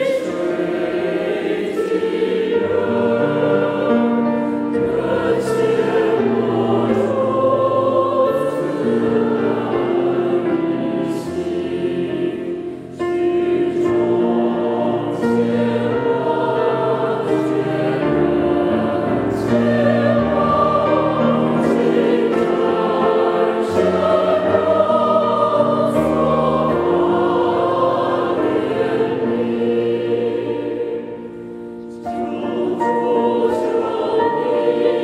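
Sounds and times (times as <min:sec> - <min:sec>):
choir singing a hymn: 0:00.0 - 0:35.0.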